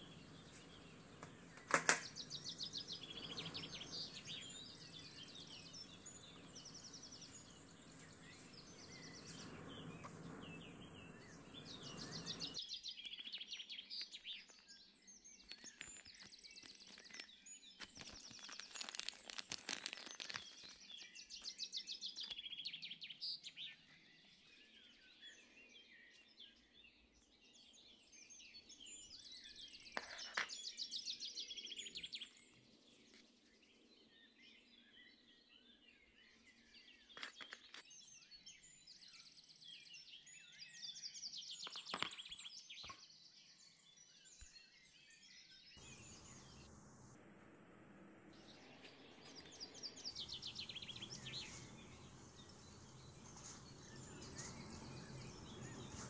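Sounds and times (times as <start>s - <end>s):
crackling handling noise: 0.0s - 12.6s, 15.6s - 21.0s, 48.3s - 56.0s
small birds singing: 0.0s - 56.0s.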